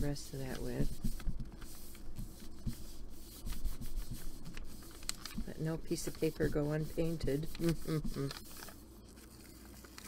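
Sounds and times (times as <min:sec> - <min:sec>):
hands rubbing paper: 0:00.0 - 0:10.0.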